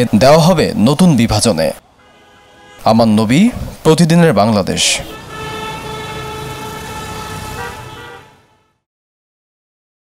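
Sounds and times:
road traffic: 0.0 - 8.9
long steady horn tone: 1.8 - 3.6, 4.8 - 8.9.

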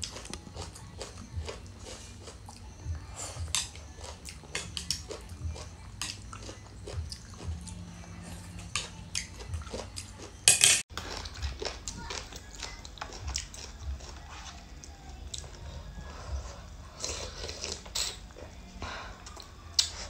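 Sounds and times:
chewing: 0.0 - 20.0
utensils clicking on a tray: 8.8 - 11.0
slurping: 16.4 - 18.6.

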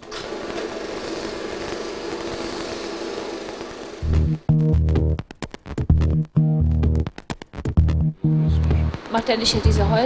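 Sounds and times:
small motor buzzing and rattling: 0.0 - 4.0.

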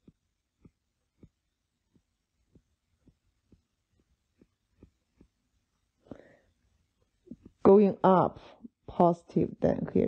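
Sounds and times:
stylus tapping on tablet screen: 0.0 - 6.0.

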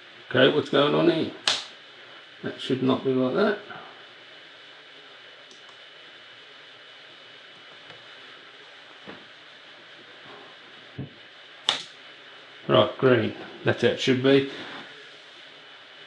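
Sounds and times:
faint room hiss: 0.0 - 16.0
laptop touchpad clicks: 11.7 - 11.9.

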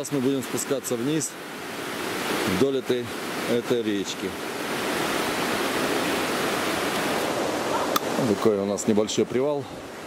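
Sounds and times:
stream rushing over rocks: 0.0 - 10.0.

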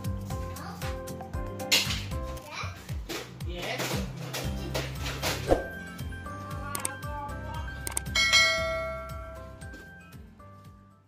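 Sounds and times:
background music: 0.0 - 11.0
bell chime ringing: 8.1 - 9.6.

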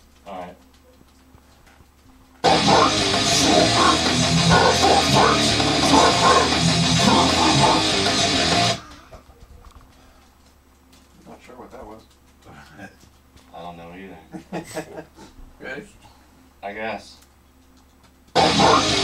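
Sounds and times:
deep growled vocal: 2.4 - 8.8, 18.4 - 19.0
heavy metal music: 2.4 - 9.0, 18.4 - 19.0.

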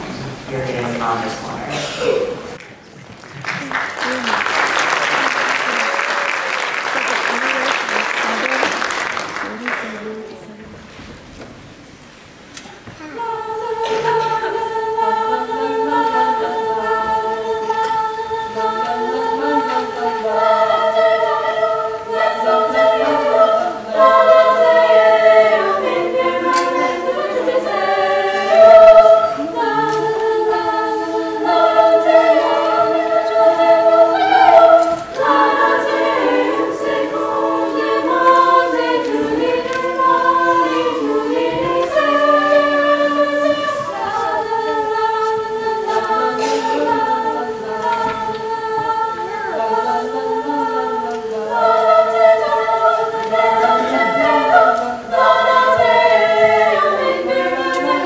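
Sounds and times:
women's choir singing: 3.7 - 11.0, 13.0 - 58.0.

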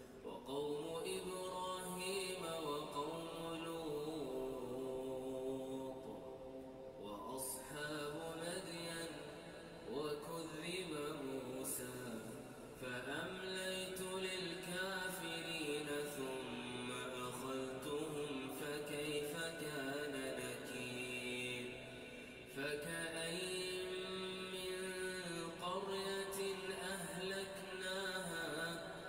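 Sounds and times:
man chanting melodically: 0.2 - 29.0.

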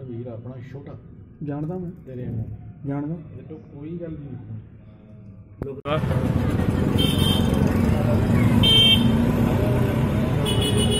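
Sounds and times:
street traffic engine rumble: 0.0 - 10.9.

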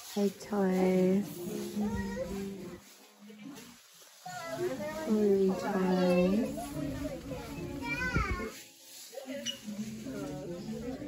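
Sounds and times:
faint store background: 0.0 - 11.0.

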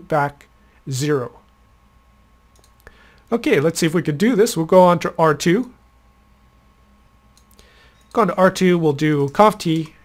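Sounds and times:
faint electrical hum: 0.0 - 10.0
computer mouse clicks: 2.5 - 2.9, 7.3 - 8.2.

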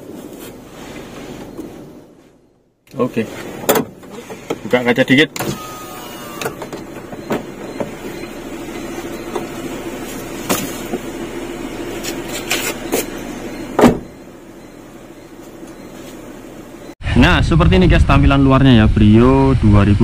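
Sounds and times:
car engine idling: 2.6 - 16.9
car door shutting thump: 10.4 - 11.1, 13.7 - 14.2.

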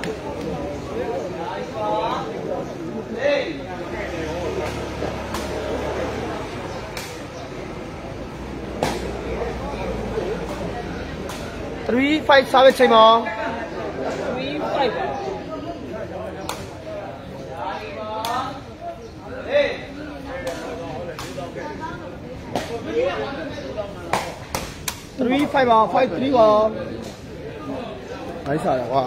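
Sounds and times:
spectator chatter: 0.0 - 29.0.

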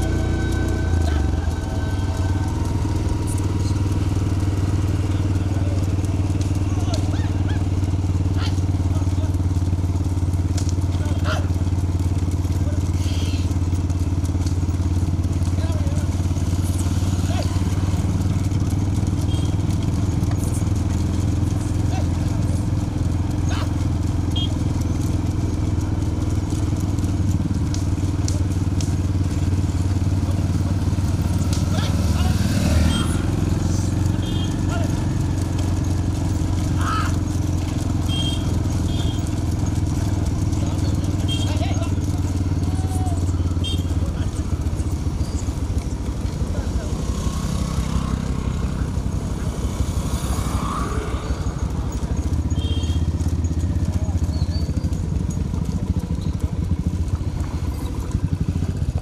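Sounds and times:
motorcycle engines droning: 0.0 - 59.0.

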